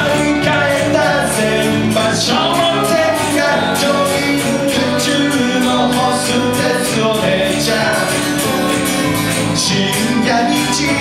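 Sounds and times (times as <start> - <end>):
man singing: 0.0 - 11.0
strummed acoustic guitars: 0.0 - 11.0.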